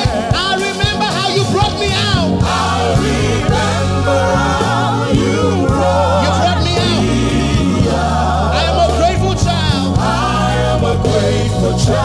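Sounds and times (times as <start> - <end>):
choir singing: 0.0 - 12.0
electric keyboard: 0.0 - 12.0
man singing lead vocal: 0.0 - 12.0.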